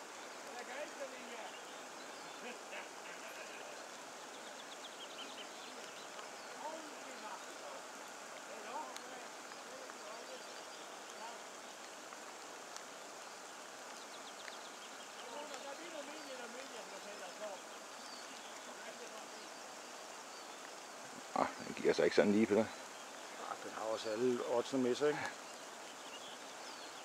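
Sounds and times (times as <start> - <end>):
river water rushing: 0.0 - 27.0.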